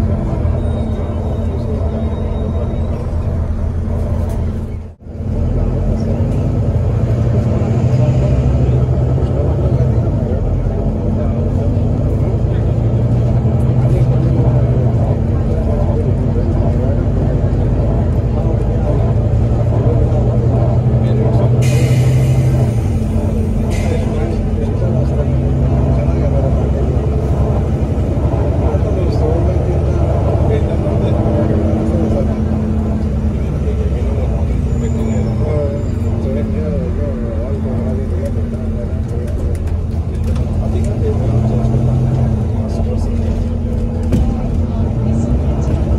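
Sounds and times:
bus diesel engine drone: 0.0s - 45.9s.

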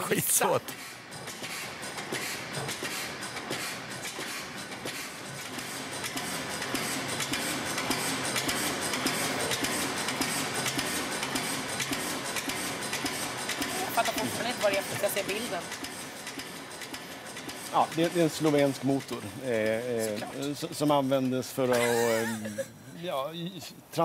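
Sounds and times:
old flywheel engine running: 0.0s - 21.6s.

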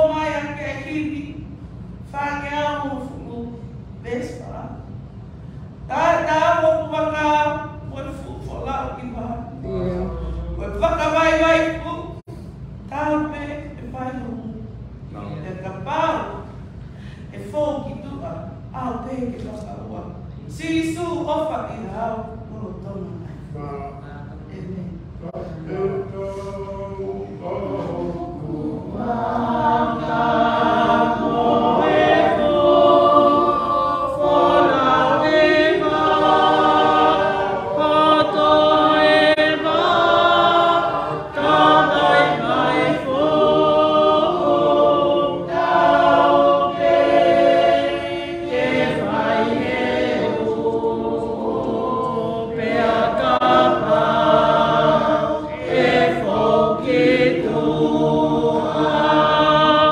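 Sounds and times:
group singing a hymn: 25.2s - 59.9s.

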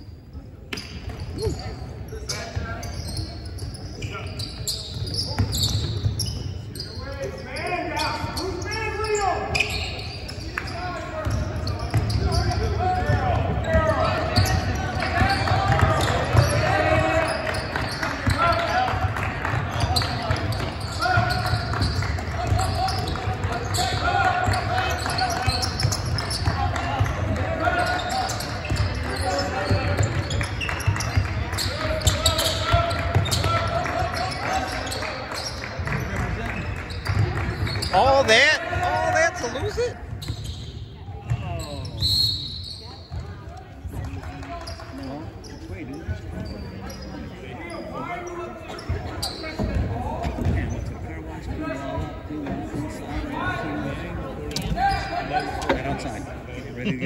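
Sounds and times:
sneakers squeaking: 0.0s - 57.0s.

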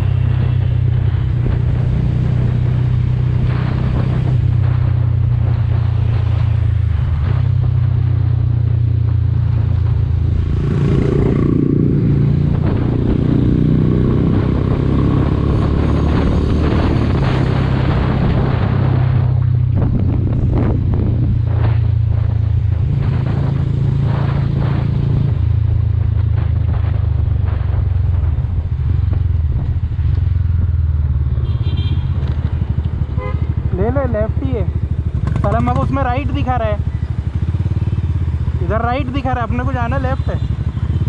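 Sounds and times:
motorcycle engine running: 0.0s - 41.0s
wind rushing over microphone: 0.0s - 41.0s.

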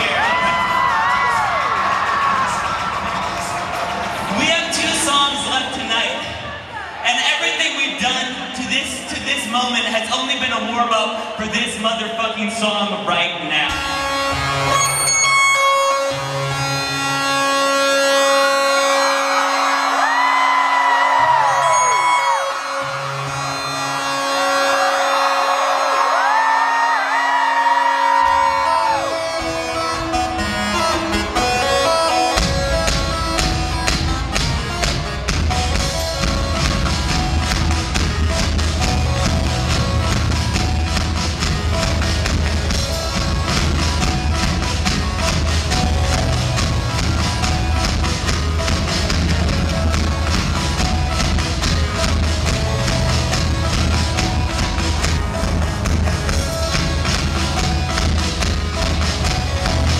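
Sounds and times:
crowd cheering: 0.0s - 8.6s, 13.8s - 59.9s
heavy drum-and-bass beat: 28.1s - 59.9s.

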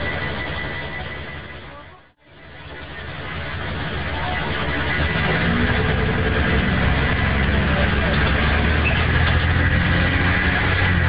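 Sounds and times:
bus diesel engine running: 0.0s - 11.0s.

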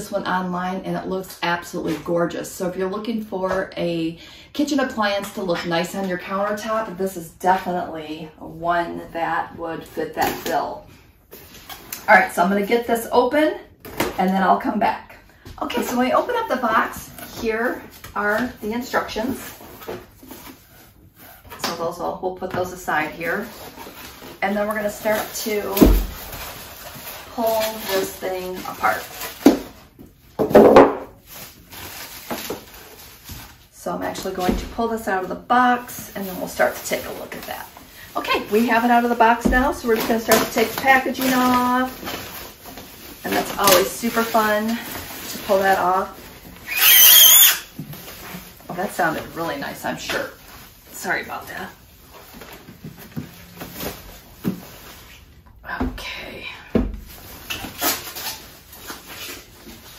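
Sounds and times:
packaging rustling: 23.3s - 29.9s, 31.2s - 33.7s, 36.4s - 49.4s.

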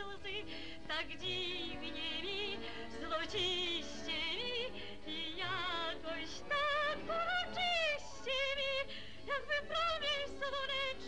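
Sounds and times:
woman singing soprano: 0.0s - 11.0s.

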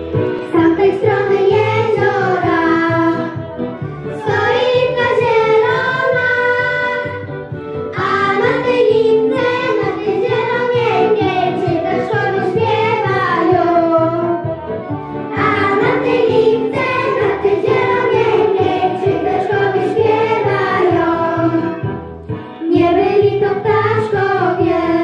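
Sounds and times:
girls singing into microphones: 0.4s - 3.5s, 4.2s - 7.3s, 8.0s - 14.5s, 15.3s - 22.0s, 22.6s - 25.0s.

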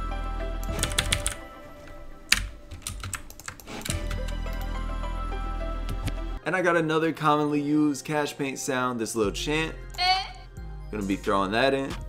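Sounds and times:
low steady music bed: 0.0s - 12.0s.

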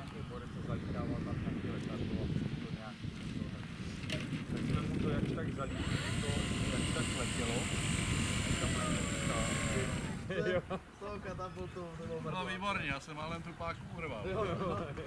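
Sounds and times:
wind rumble on microphone: 0.0s - 12.2s, 13.6s - 15.0s
electric propeller high whine: 5.5s - 10.4s.

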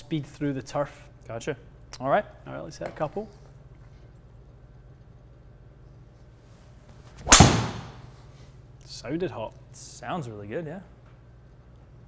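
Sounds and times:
golf club swing whoosh: 7.1s - 8.2s
golf ball struck with crack: 7.2s - 8.1s.

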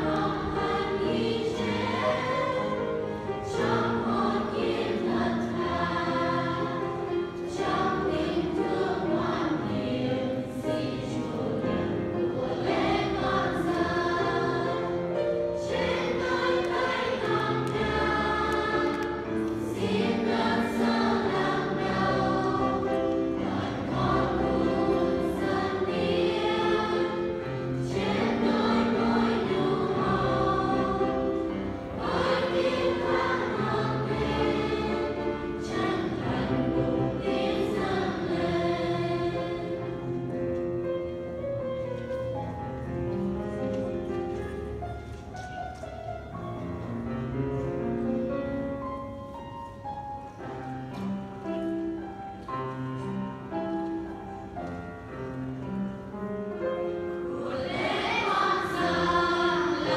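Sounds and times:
choir singing a hymn: 0.0s - 41.8s, 46.6s - 59.9s.

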